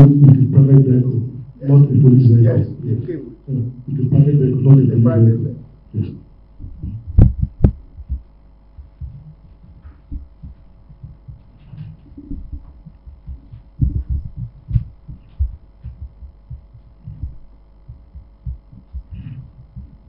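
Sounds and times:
steady electrical hum: 0:00.0 - 0:20.0
low thumps and bumps: 0:06.5 - 0:20.0.

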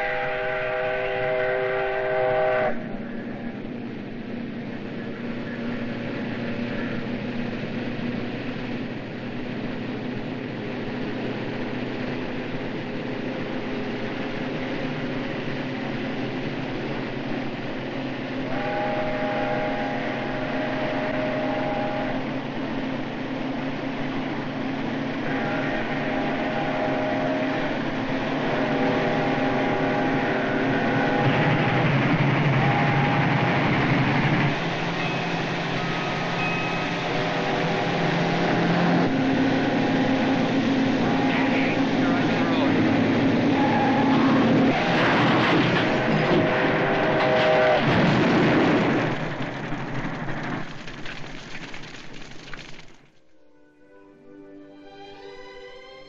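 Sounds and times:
steam train whistle blasts: 0:00.0 - 0:02.9, 0:18.5 - 0:22.4, 0:25.2 - 0:31.6, 0:41.0 - 0:41.8, 0:43.5 - 0:44.6, 0:46.4 - 0:47.9
train rushing noise: 0:00.0 - 0:53.0
harsh burst of noise: 0:28.5 - 0:53.0.

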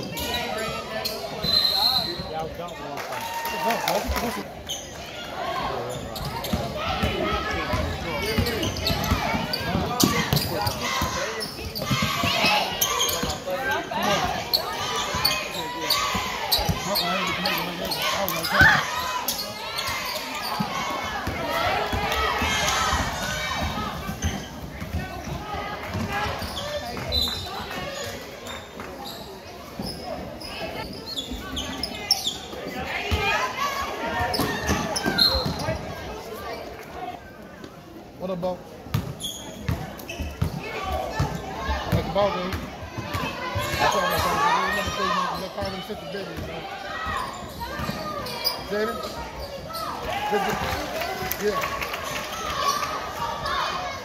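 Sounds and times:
voices calling out and chattering: 0:00.0 - 0:54.0.

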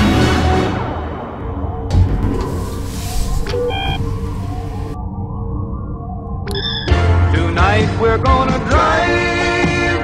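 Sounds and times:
electronic beep: 0:03.2 - 0:05.0, 0:06.4 - 0:07.1.

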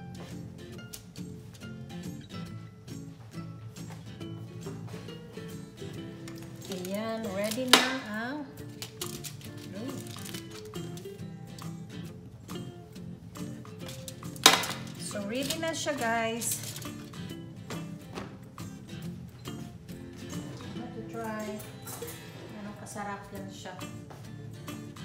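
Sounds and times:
background music: 0:00.0 - 0:25.0
metal sheet pan clanking on counter: 0:07.4 - 0:08.1, 0:14.4 - 0:15.6.

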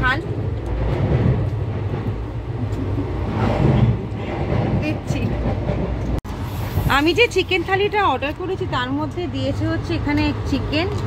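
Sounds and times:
train running low rumble: 0:00.0 - 0:11.0.

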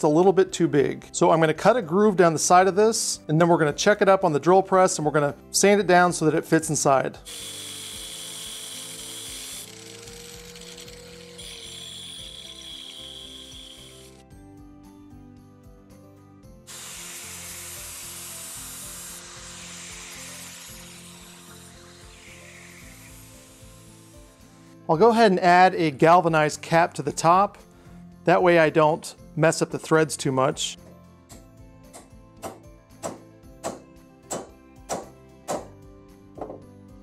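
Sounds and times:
angle grinder grinding steel: 0:07.2 - 0:14.2, 0:16.7 - 0:24.9.

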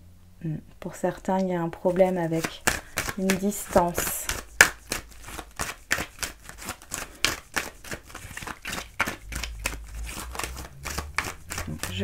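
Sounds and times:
cards being shuffled: 0:01.7 - 0:12.0.

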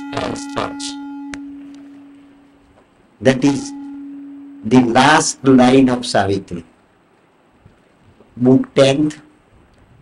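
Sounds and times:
low hum with overtones: 0:00.0 - 0:10.0.

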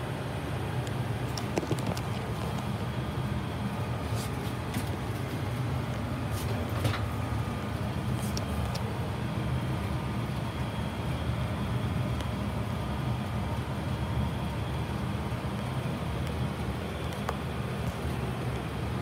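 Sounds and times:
furnace humming: 0:00.0 - 0:19.0.

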